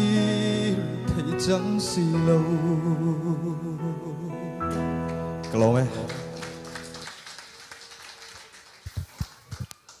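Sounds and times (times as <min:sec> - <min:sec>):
audience applause: 0:05.4 - 0:10.0.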